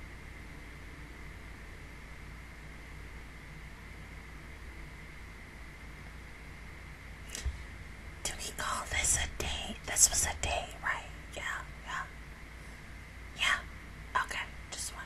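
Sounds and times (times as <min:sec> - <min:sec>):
woman whispering: 0:08.2 - 0:12.1, 0:13.4 - 0:15.0.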